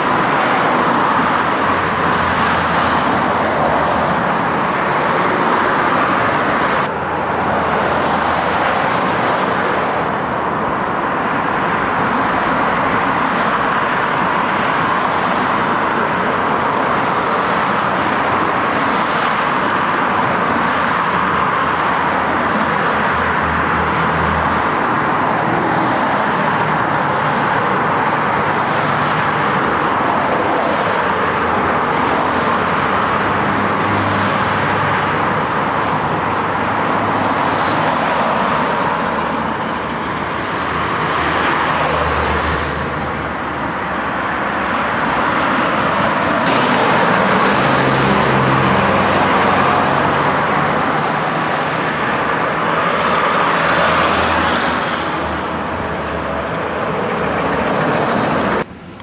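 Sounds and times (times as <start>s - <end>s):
dense road traffic: 0.0s - 59.0s
low engine hum of passing vehicles: 0.0s - 59.0s.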